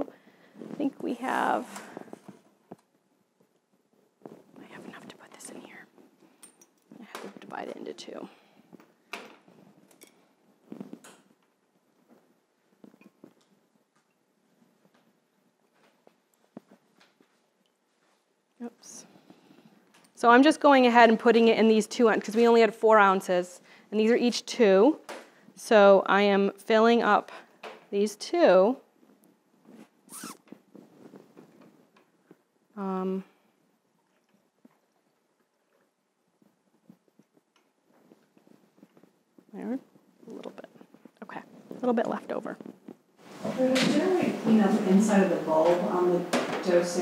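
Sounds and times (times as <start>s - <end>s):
squeaky hiss: 30.1s - 30.4s.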